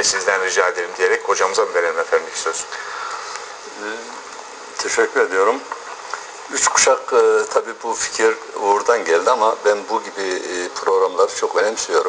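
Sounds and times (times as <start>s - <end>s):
man speaking: 0.0s - 2.9s, 3.7s - 5.7s, 6.5s - 12.0s
steady hiss: 0.0s - 12.0s.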